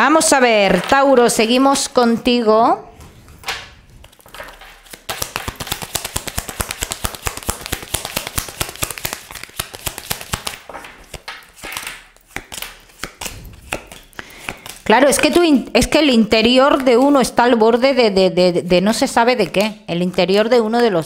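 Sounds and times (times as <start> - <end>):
cards being shuffled: 3.0 - 15.4.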